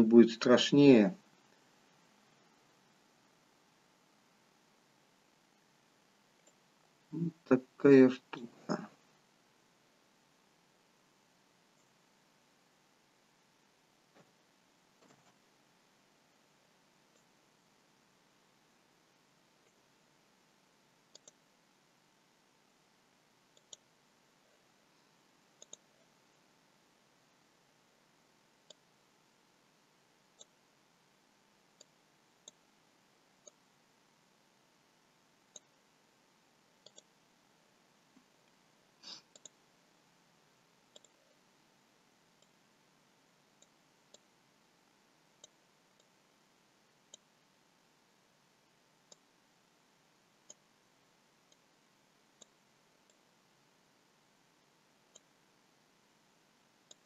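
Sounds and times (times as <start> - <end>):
computer mouse clicks: 6.4 - 6.6, 21.1 - 21.4, 23.5 - 23.9, 25.6 - 26.0, 28.6 - 28.8, 30.4 - 30.6, 36.8 - 37.1, 38.4 - 39.6, 40.9 - 41.4, 47.1 - 47.3, 50.4 - 50.6, 52.4 - 53.2.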